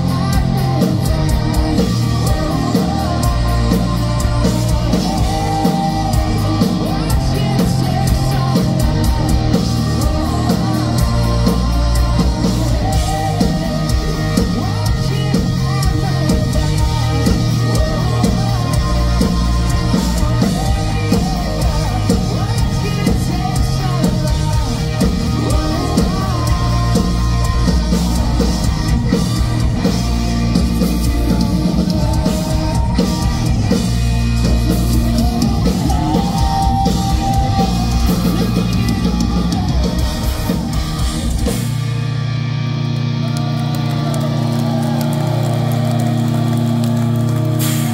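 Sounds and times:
hard rock band playing: 0.0 - 47.9.

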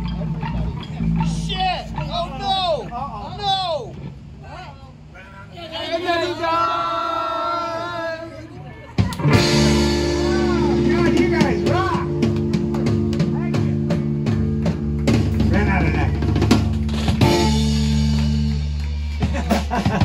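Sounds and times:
electric bass: 0.0 - 4.5, 9.0 - 20.0
electric guitar: 9.0 - 20.0
drum hits: 9.1 - 20.0.

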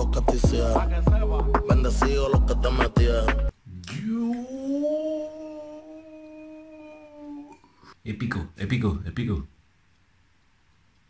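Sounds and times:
man singing long note: 0.0 - 7.5
man saying drawn-out oooh: 3.7 - 7.6.

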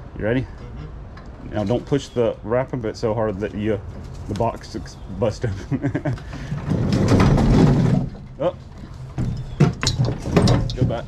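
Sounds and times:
pallet jack rumbling: 6.1 - 11.0
sharp knocks: 6.2 - 8.4, 9.1 - 11.0.

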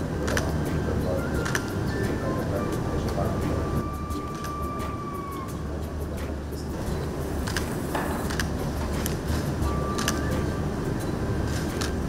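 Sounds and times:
low room noise rumble: 0.0 - 12.0
camera shutter clicks: 1.4 - 1.7, 7.4 - 7.7, 8.3 - 8.5, 10.0 - 10.3.

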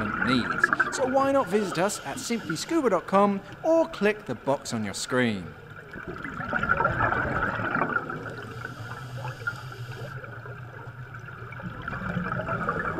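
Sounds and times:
underwater air bubbles: 0.0 - 3.6, 5.5 - 12.9.

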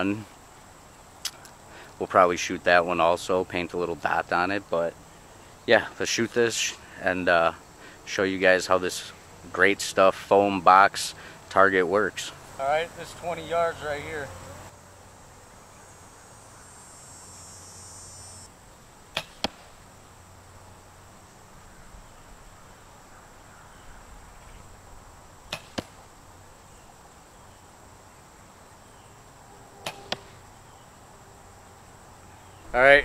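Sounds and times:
arrow striking foam target: 19.1 - 19.8, 25.5 - 26.0, 29.8 - 30.4
bow string snap: 25.5 - 26.0, 29.8 - 30.4.

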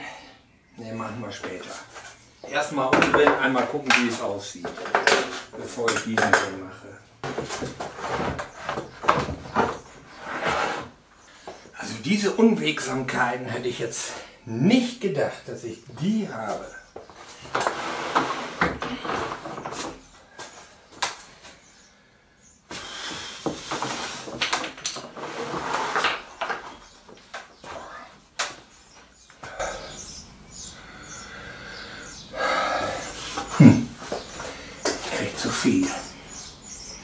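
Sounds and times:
wooden boards knocking and scraping: 2.8 - 6.6, 7.2 - 11.0, 16.5 - 21.2, 22.7 - 27.8.

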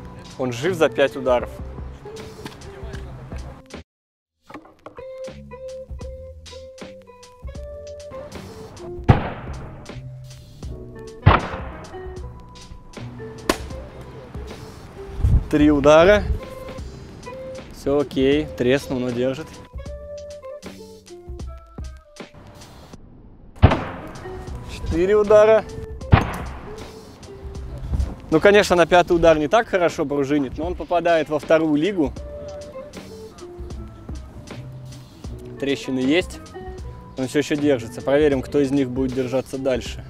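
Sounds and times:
background music: 0.0 - 3.8, 4.5 - 22.9, 23.6 - 40.0
heavy impacts on helmet: 13.5 - 13.8.

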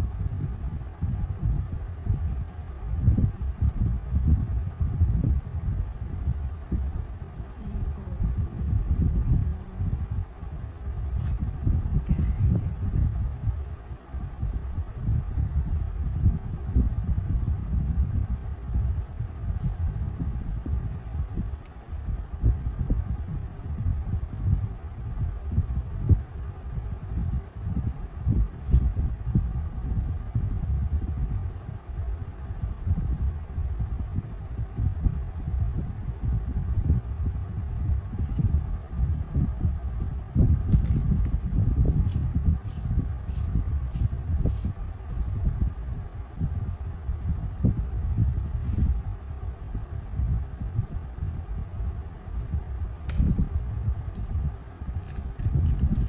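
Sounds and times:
crayon rubbing on paper: 4.7 - 10.1, 29.8 - 38.0.

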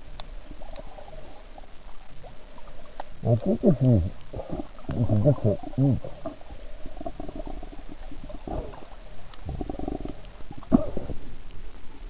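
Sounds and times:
underwater gurgling and rumbling: 0.0 - 12.0.

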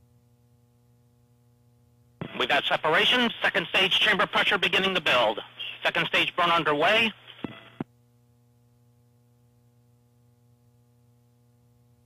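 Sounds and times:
faint steady hum: 0.0 - 12.0
faint radio hiss: 2.2 - 7.9
radio clicks: 7.3 - 7.9.

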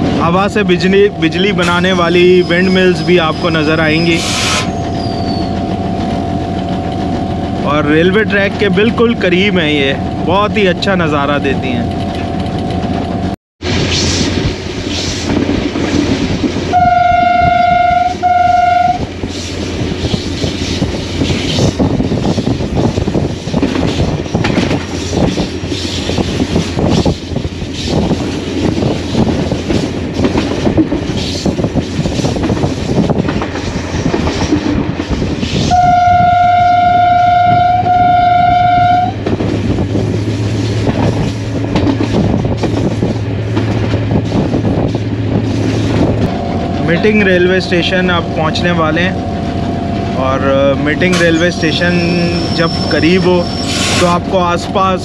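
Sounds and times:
locomotive running on track: 0.0 - 55.0
locomotive horn blasts: 16.7 - 19.0, 35.7 - 39.2.

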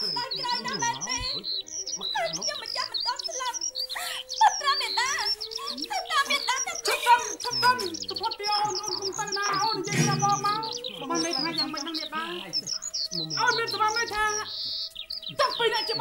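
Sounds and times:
birds chirping: 0.0 - 16.0
person's voice: 4.0 - 12.5.

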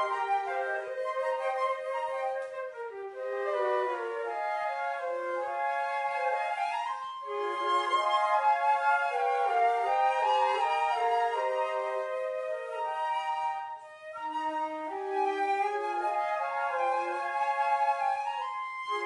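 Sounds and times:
flutes and clarinet in harmony: 0.0 - 19.0.

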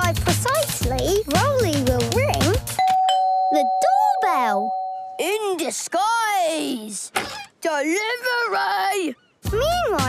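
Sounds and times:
two-note doorbell chime: 2.8 - 5.2
person speaking: 3.5 - 5.7.

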